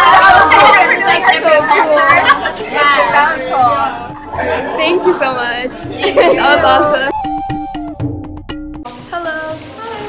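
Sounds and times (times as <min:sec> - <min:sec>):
women talking excitedly: 0:00.0 - 0:07.1.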